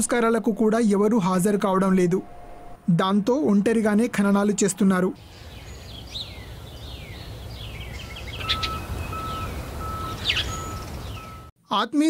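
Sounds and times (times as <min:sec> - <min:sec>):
low outdoor rumble: 0:00.0 - 0:11.2
small birds chirping: 0:05.2 - 0:11.5
short beeps: 0:08.5 - 0:11.5.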